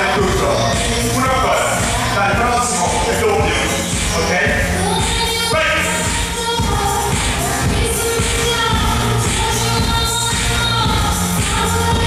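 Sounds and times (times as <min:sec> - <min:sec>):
workout music over loudspeakers: 0:00.0 - 0:12.0.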